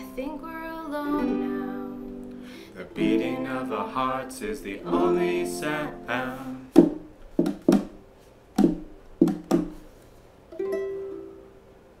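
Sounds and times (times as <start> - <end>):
ukuleles strumming chords: 0.0 - 8.0, 10.5 - 12.0.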